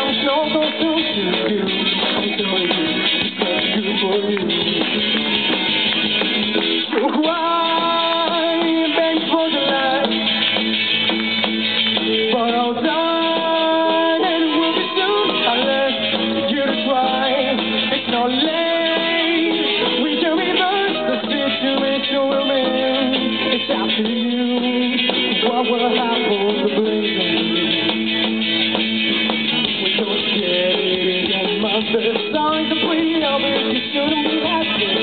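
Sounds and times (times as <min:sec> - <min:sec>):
drum kit: 0:00.0 - 0:35.0
electric guitars: 0:00.0 - 0:35.0
live rock band playing: 0:00.0 - 0:35.0.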